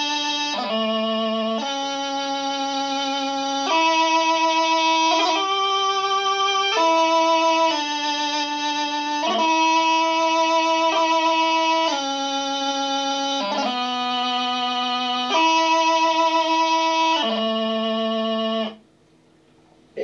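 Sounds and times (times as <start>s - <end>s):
bagpipe practice chanter playing: 0.0s - 18.8s.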